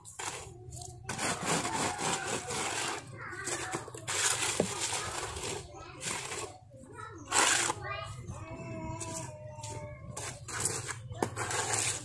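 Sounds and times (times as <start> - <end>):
trowel scraping wet concrete: 0.0 - 6.6, 7.2 - 7.8, 9.0 - 12.0.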